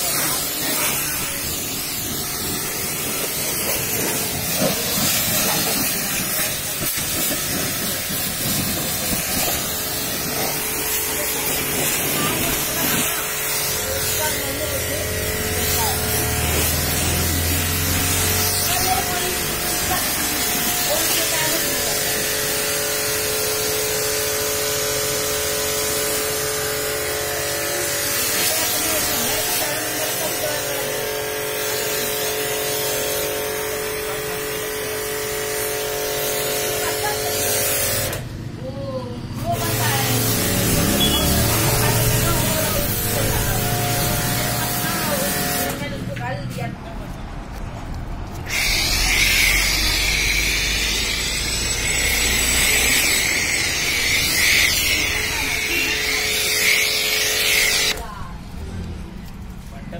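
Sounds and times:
pressure washer jet hissing: 0.0s - 38.3s, 39.3s - 46.0s, 48.3s - 58.0s
washer motor humming: 7.4s - 20.9s.

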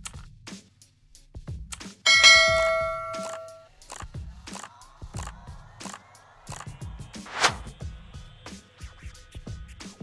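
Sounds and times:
background music with steady beat: 0.2s - 3.6s
bell-like notification chime: 2.1s - 3.6s.

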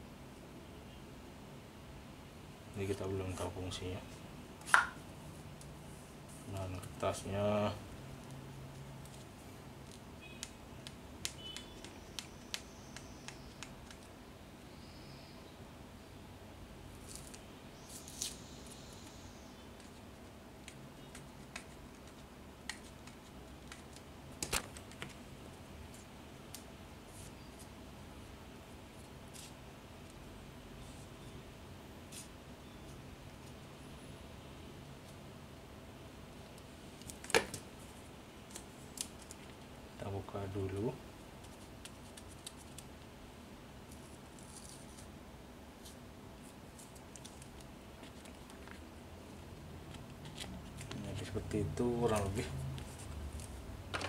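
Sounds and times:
paper labels ticking and rustling: 8.2s - 14.2s, 19.8s - 25.2s, 41.4s - 43.1s, 45.8s - 48.9s, 49.5s - 53.6s.

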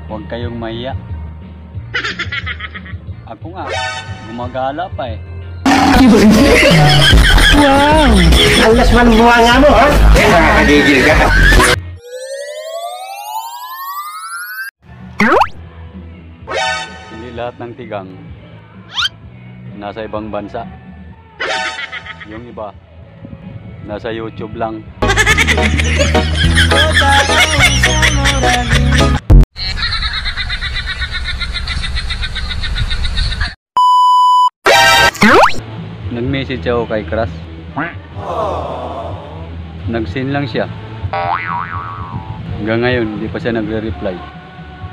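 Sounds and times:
buzzy synthetic rising tone: 10.6s - 15.5s
high trembling effect: 12.0s - 15.5s
censor beep: 33.8s - 34.5s.

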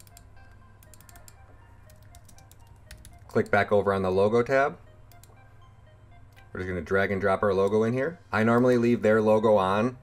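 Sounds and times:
computer keyboard keystrokes: 0.0s - 3.6s
quiet background music: 0.0s - 10.0s.

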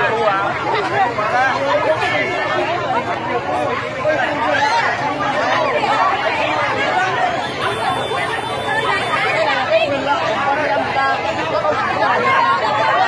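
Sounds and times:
crowd babble: 0.0s - 13.0s.

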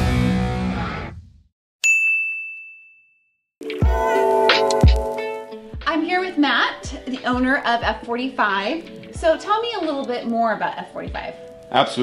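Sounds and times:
rock music: 0.0s - 1.2s, 3.6s - 10.0s
bright bell ding: 1.8s - 3.2s.

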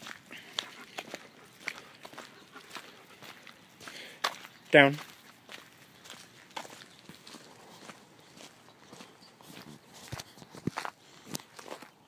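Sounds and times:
footsteps on pavement: 0.0s - 12.0s.

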